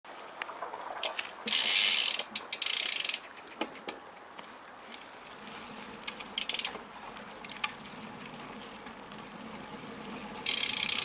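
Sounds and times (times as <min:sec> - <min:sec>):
bicycle freewheel ratchet clicking: 0:01.5 - 0:03.3, 0:06.1 - 0:08.3, 0:09.6 - 0:11.0.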